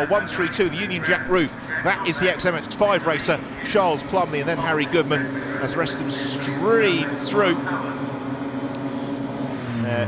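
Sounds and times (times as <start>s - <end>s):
race car engine: 0.0s - 10.0s.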